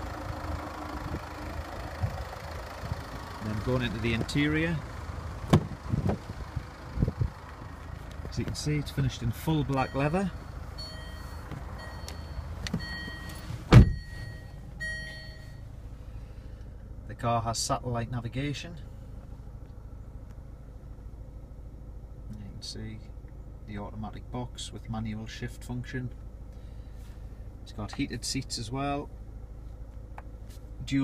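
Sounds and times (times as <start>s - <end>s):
diesel engine idling: 0.0s - 31.0s
low steady rumble: 0.0s - 31.0s
car door opening: 5.4s - 6.3s, 10.8s - 15.4s.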